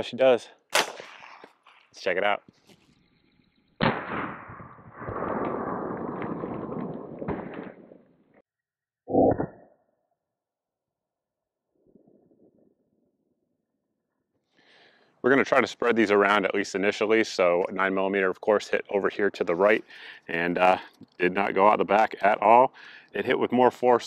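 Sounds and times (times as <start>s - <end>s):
suppressed pistol shot: 0.7s - 1.6s, 3.8s - 5.6s.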